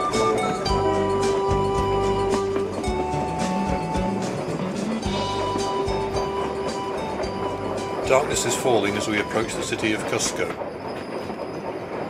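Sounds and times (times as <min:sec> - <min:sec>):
rail clicks: 0:00.0 - 0:12.0
train running noise: 0:00.0 - 0:12.0.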